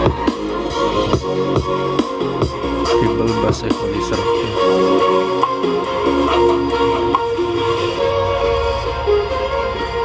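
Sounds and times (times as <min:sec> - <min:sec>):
music over portable speaker: 0:00.0 - 0:10.0.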